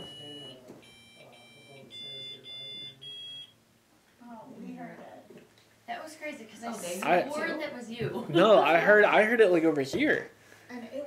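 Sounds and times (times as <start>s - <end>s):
electronic meter beeping: 0.0s - 3.6s.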